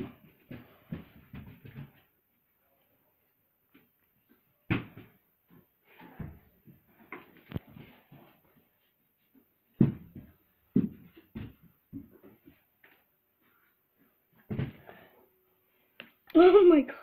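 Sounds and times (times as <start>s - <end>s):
dull thumps and knocks: 9.8s - 12.5s, 14.5s - 14.8s.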